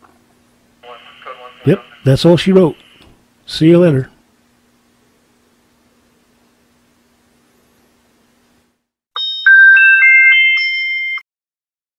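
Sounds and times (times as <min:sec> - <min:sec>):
electronic chime jingle: 0:09.2 - 0:11.2.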